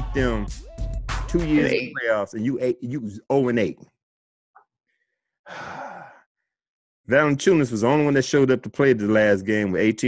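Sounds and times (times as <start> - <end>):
man sighing: 5.5 - 6.2.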